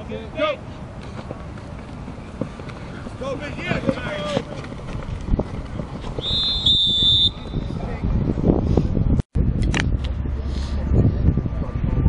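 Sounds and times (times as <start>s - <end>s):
distant players shouting: 0.0s - 4.9s
referee's whistle: 6.2s - 7.7s.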